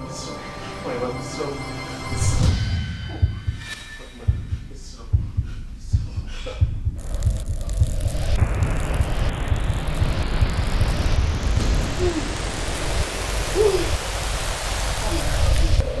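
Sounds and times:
loud low rumble: 0:02.3 - 0:16.0
rising rushing hiss: 0:07.0 - 0:16.0.

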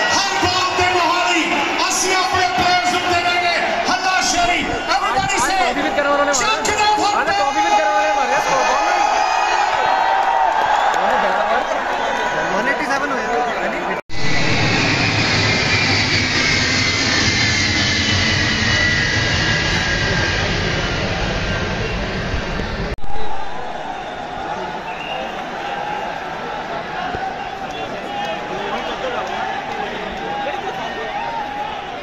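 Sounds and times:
stadium crowd noise: 0:00.0 - 0:32.0
jet aircraft flying overhead: 0:14.1 - 0:23.0.

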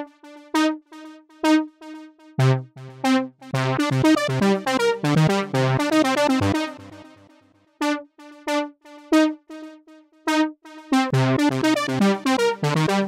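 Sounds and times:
synthesizer step-sequenced melody: 0:00.2 - 0:07.2, 0:07.8 - 0:13.0.

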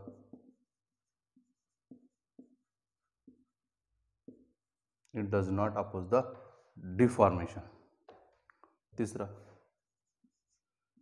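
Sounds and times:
marker pen writing on whiteboard: 0:00.0 - 0:04.9, 0:09.7 - 0:11.0.

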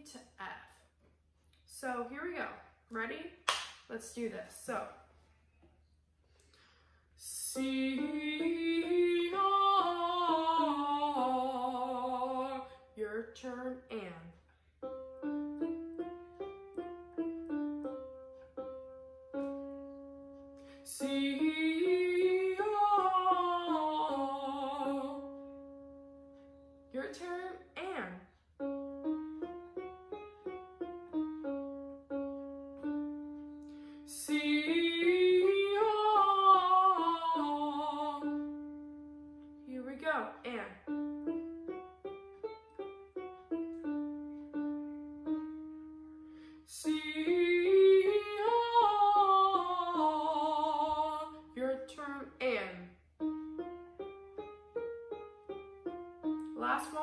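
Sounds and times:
woman breathing: 0:06.2 - 0:07.2, 0:33.6 - 0:34.1, 0:46.2 - 0:46.7
woman singing vocal exercise: 0:07.2 - 0:14.2, 0:20.8 - 0:25.4, 0:34.1 - 0:38.5, 0:46.7 - 0:52.8
electronic keyboard arpeggio: 0:14.8 - 0:20.7, 0:28.6 - 0:33.8, 0:53.2 - 0:57.0.

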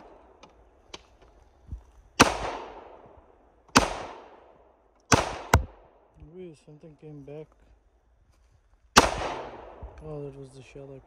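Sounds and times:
pistol shot with echo: 0:02.2 - 0:03.0, 0:03.7 - 0:06.0, 0:09.0 - 0:09.8.

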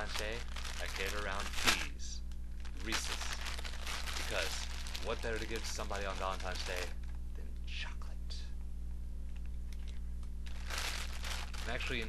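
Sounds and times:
low electrical hum: 0:00.0 - 0:12.0
person whispering: 0:07.4 - 0:08.5.

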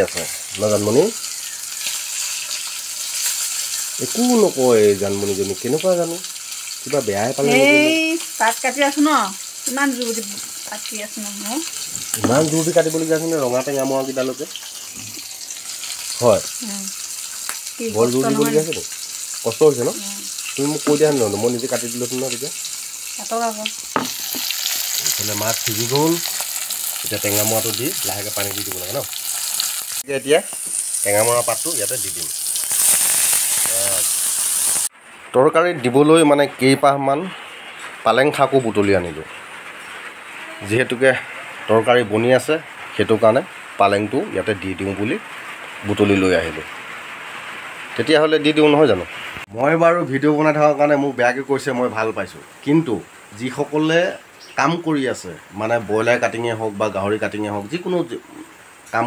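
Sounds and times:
vegetables sizzling in oil: 0:00.0 - 0:59.0
woman speaking: 0:07.4 - 0:11.6, 0:16.6 - 0:16.9, 0:17.8 - 0:18.7, 0:23.2 - 0:23.7.

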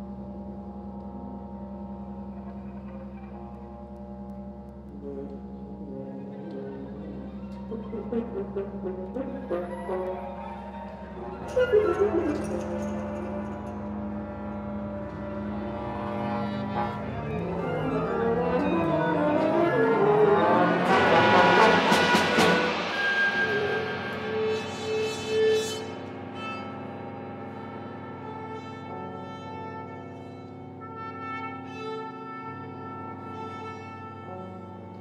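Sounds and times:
contemporary chamber music: 0:00.0 - 0:35.0.

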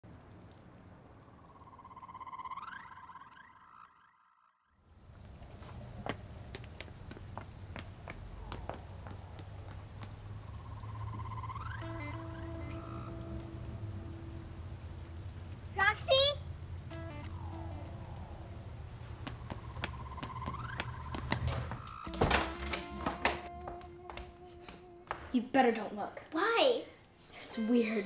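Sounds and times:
rising tonal swell: 0:01.3 - 0:04.5, 0:10.4 - 0:15.7, 0:16.7 - 0:22.2
low steady drone: 0:10.3 - 0:15.8, 0:16.4 - 0:22.7
sharp ticks: 0:19.0 - 0:22.1.

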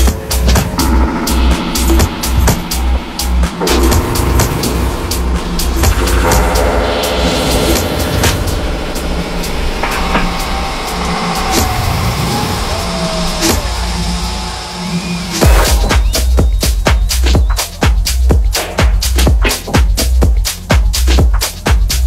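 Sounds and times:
electronic dance music: 0:00.0 - 0:22.0.

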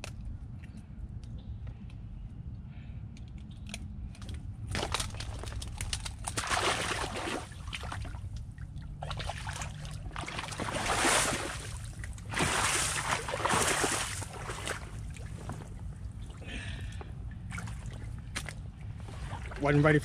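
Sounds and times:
pond water sloshing and splashing: 0:04.2 - 0:20.0.

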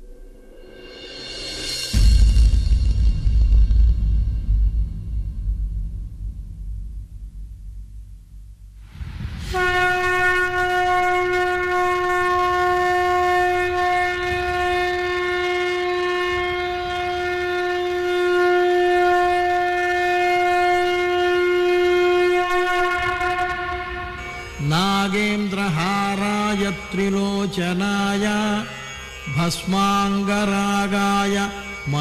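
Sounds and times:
conch shell blown in long note: 0:09.5 - 0:32.0
chanted singing: 0:24.2 - 0:32.0.

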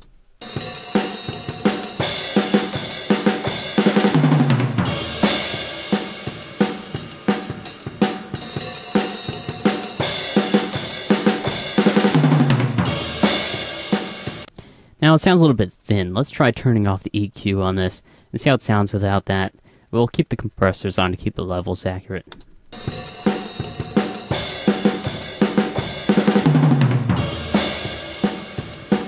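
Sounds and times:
drum kit beat: 0:00.4 - 0:14.5, 0:22.7 - 0:29.0.

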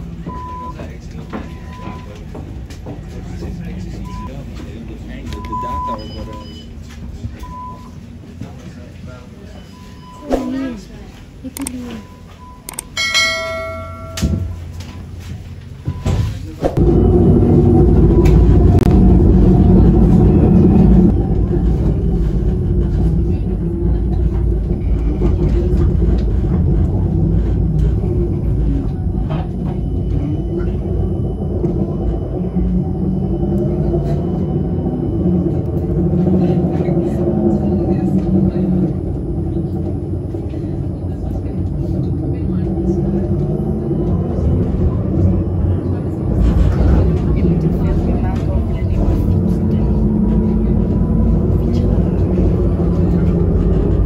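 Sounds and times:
tram running: 0:00.0 - 0:54.0
voices: 0:00.0 - 0:54.0.

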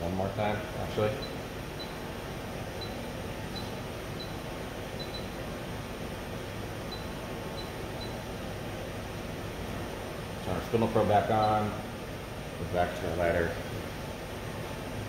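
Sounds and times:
machine fans humming: 0:00.0 - 0:15.0.

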